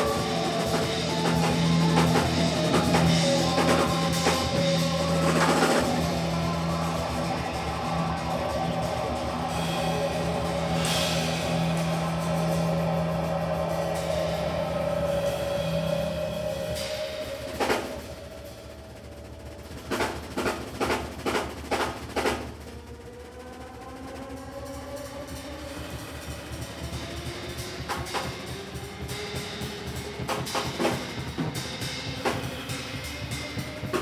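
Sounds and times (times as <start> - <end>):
live rock band: 0.0 - 22.4
drum strokes: 0.0 - 23.9, 25.1 - 34.0
cymbal wash: 0.0 - 34.0.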